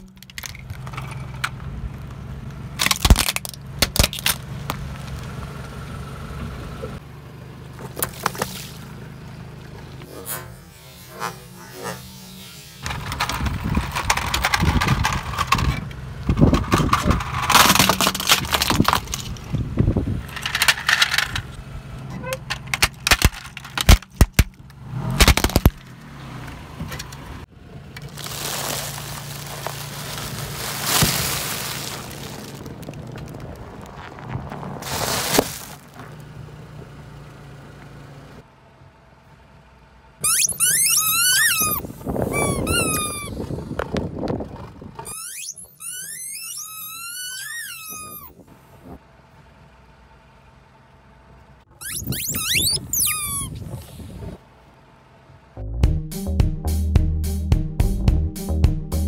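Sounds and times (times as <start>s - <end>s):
plastic toy cracking and snapping: 2.8s - 4.4s, 22.6s - 24.6s, 25.2s - 25.8s
popcorn crunching under tyre: 2.8s - 5.3s, 28.0s - 36.2s
high sliding squeaks: 40.2s - 43.5s, 45.0s - 48.4s, 51.8s - 54.1s.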